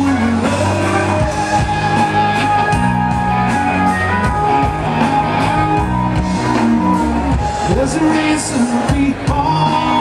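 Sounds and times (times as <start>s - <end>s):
bass: 0.0s - 10.0s
drums: 0.0s - 10.0s
electric guitar: 0.0s - 10.0s.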